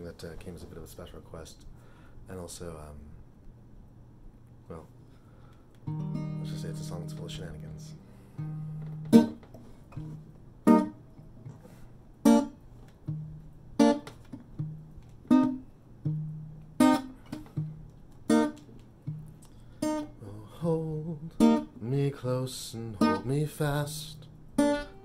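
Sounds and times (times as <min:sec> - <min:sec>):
acoustic guitar bass notes and chords: 0:05.8 - 0:25.0.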